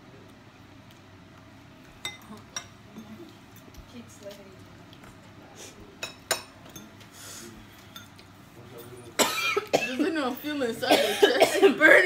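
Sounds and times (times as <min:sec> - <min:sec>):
cutlery clinking on ceramic bowl: 0:02.0 - 0:03.7, 0:06.0 - 0:07.0.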